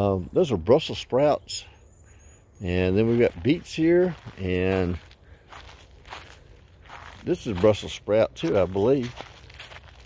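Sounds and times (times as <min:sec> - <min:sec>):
footsteps crunching on snow: 0:02.9 - 0:10.0.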